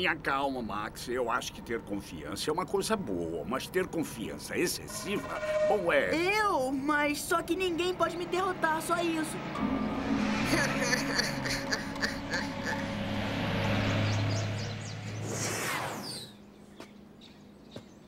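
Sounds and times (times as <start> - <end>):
low hum: 0.6 - 17.2
background music: 4.8 - 15.2
falling whoosh: 8.6 - 16.4
bus engine running: 10.4 - 15.4.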